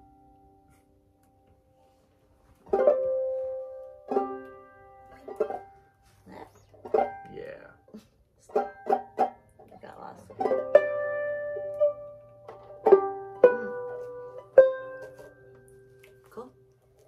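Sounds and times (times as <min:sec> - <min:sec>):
banjos plucked: 0:02.6 - 0:16.2.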